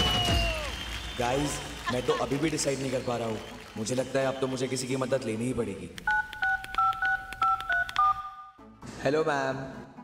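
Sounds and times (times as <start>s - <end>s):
touch-tone keypad beeps: 6.0s - 8.6s.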